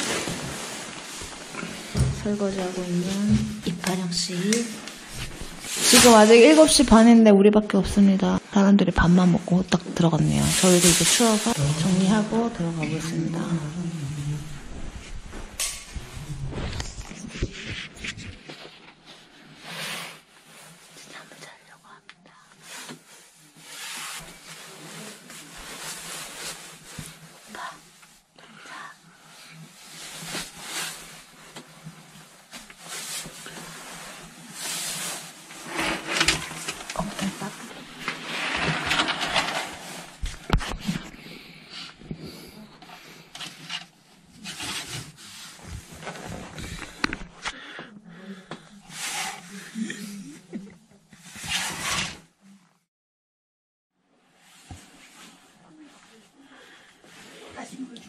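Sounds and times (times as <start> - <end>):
fabric rustling: 0.0 - 7.2, 10.4 - 13.3, 22.6 - 28.3, 29.2 - 41.2, 43.6 - 47.5.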